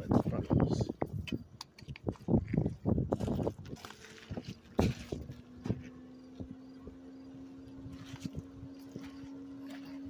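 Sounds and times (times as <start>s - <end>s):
footsteps on dirt: 1.1s - 6.6s, 7.7s - 10.0s.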